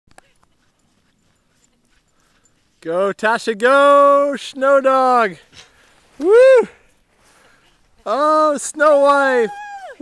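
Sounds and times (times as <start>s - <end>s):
faint dog yip: 9.4s - 10.0s.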